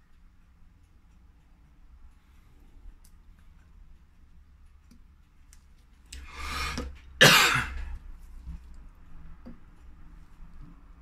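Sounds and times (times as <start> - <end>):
person coughing: 7.2 - 8.0.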